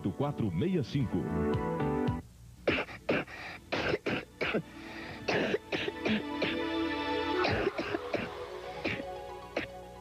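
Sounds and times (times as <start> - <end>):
background music: 0.0 - 2.3, 3.6 - 10.0
person coughing: 2.7 - 4.6, 5.3 - 6.6, 7.4 - 9.8.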